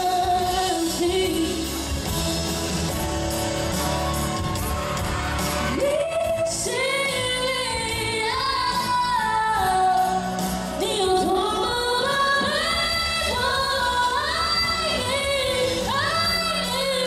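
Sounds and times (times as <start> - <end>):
woman singing pop melody: 0.0 - 2.2, 5.6 - 17.0
musical accompaniment: 0.0 - 17.0.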